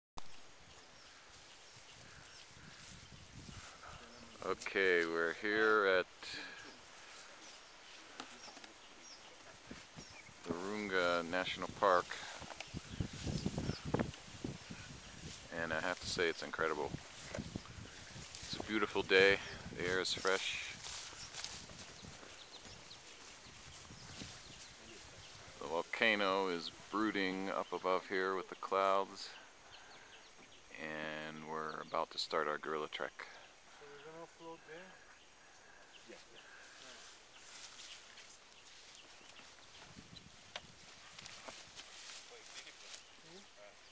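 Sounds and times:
wind rumbling on microphone: 1.2s - 4.4s, 11.6s - 25.6s, 39.6s - 41.8s
footsteps on grassy dirt path: 6.4s - 26.1s, 35.8s - 43.2s.

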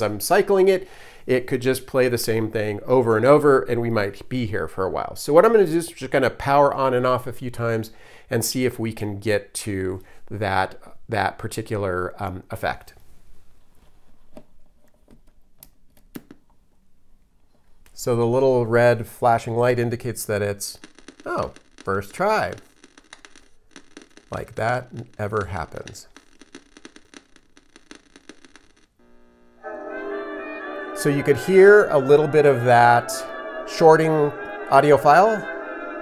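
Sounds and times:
electrical crackling clicks: 20.7s - 29.0s
held musical chord: 29.6s - 36.0s.

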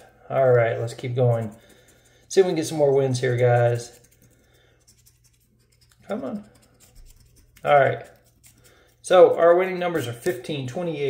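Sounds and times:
scratching lottery ticket: 0.5s - 10.5s.

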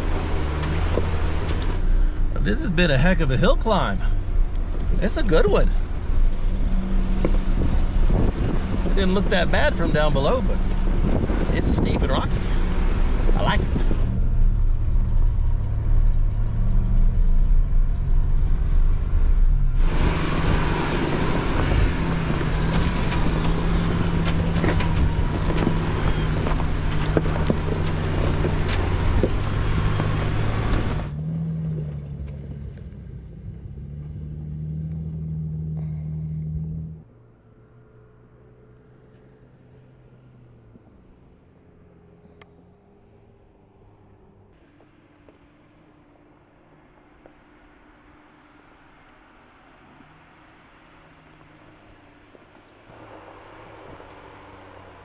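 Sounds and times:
engine pulling uphill: 0.0s - 55.0s
tyres crunching over loose rock: 22.0s - 31.0s.

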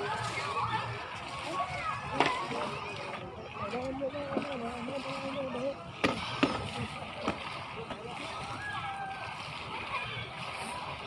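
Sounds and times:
distant voices: 0.0s - 11.0s
water splashing: 0.0s - 11.0s.

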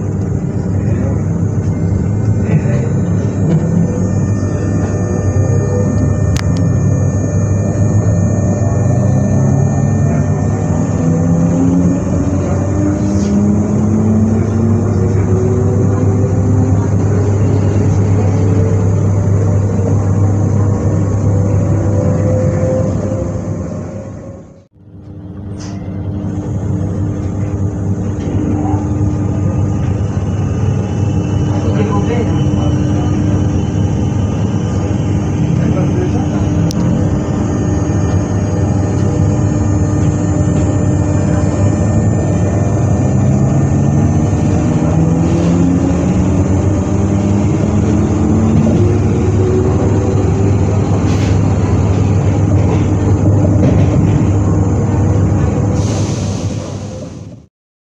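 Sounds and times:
whining motor tones rising: 0.0s - 55.8s
electric train rumble and hum: 0.0s - 57.5s.

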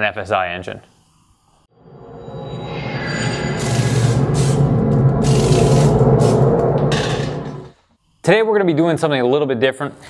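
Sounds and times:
electronic drone: 1.7s - 7.8s
hissing whooshes: 2.4s - 7.7s.

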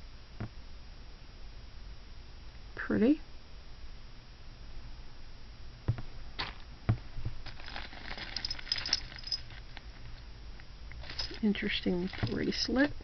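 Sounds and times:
metal bracelets clinking: 7.5s - 10.2s, 11.0s - 13.0s
metal bracelets clicking: 8.4s - 9.5s.

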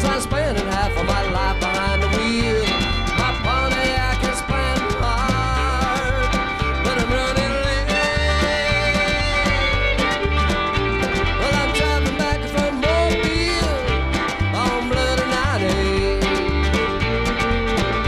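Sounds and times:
drums with cymbal beat: 0.0s - 18.0s
fiddle sliding: 0.0s - 18.0s
strummed acoustic guitar: 0.0s - 18.0s
upright bass: 0.0s - 18.0s.

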